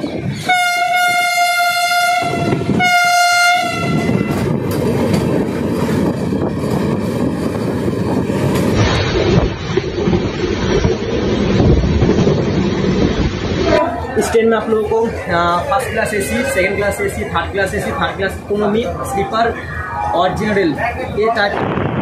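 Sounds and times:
train rumbling and rattling on track: 0.0 - 22.0
train horn blasts: 0.4 - 4.4.

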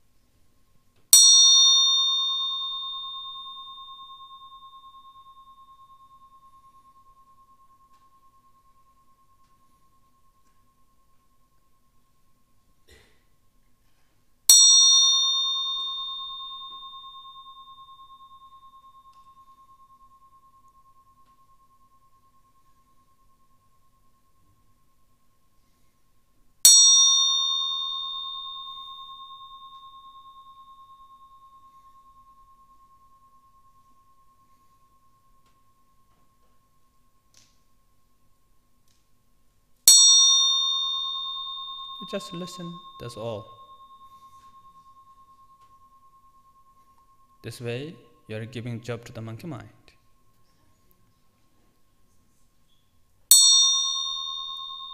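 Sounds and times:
meditation bell ringing: 0.6 - 54.9.

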